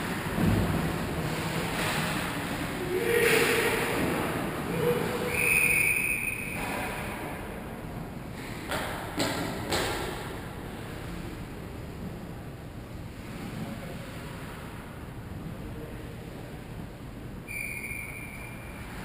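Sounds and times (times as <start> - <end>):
ice rink ambience: 0.0 - 19.0
whistle blown: 5.3 - 6.7, 17.5 - 18.8.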